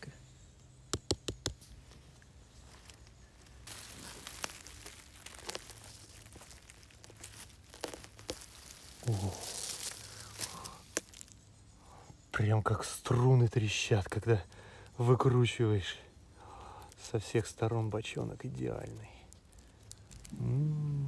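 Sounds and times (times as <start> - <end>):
fingers knocking on mushroom cap: 0.9 - 1.6
soil crackling and tearing: 1.5 - 11.7, 12.3 - 21.0
leaf litter rustling: 1.7 - 11.4, 16.6 - 21.0
vocal murmur: 20.3 - 21.0.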